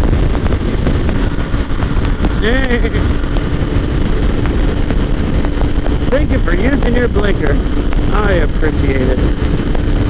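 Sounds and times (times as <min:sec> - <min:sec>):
motorcycle engine cruising: 0:00.0 - 0:10.0
wind rushing over microphone: 0:00.0 - 0:10.0.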